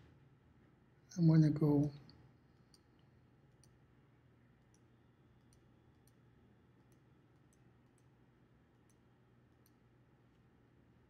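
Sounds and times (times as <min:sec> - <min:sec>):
low steady hum: 0:00.0 - 0:11.0
computer mouse clicks: 0:03.5 - 0:03.8, 0:04.6 - 0:09.9.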